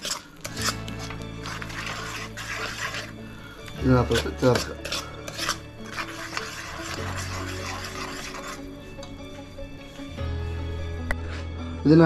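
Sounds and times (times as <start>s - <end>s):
metal spoon scraping paste: 0.0s - 10.2s
background music sustained notes: 0.0s - 12.0s.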